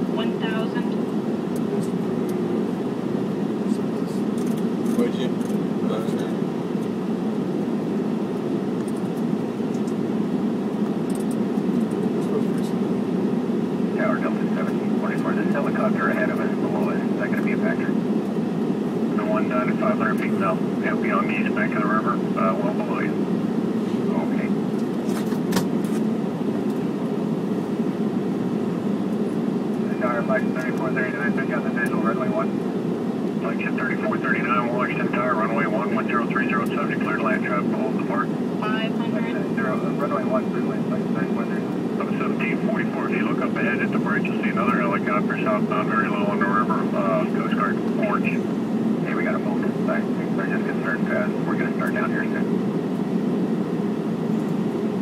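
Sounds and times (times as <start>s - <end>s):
cockpit airflow and engine rush: 0.0s - 55.0s
radio voice chatter: 14.0s - 18.0s, 19.1s - 23.2s, 23.9s - 24.5s, 29.8s - 32.5s, 33.4s - 52.6s.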